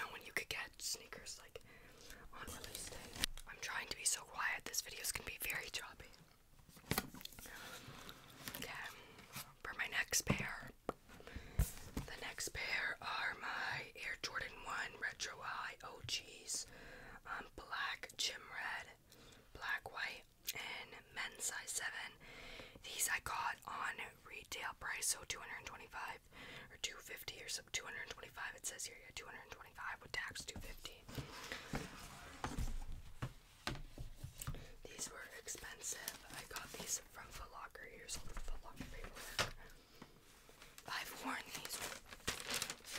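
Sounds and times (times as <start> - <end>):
woman whispering into microphone: 0.0 - 1.6, 2.2 - 6.2, 8.6 - 10.8, 17.3 - 22.2, 22.8 - 31.1, 34.8 - 39.5, 40.8 - 42.0.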